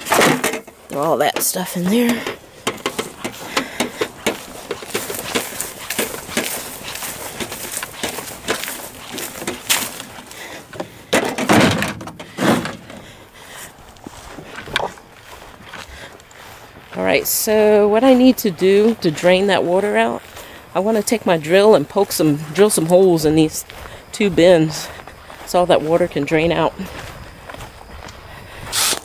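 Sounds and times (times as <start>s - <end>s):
close handling noise: 0.0s - 13.1s
foil pan crinkling: 2.8s - 10.5s
junk knocking into plastic bin: 11.1s - 12.9s.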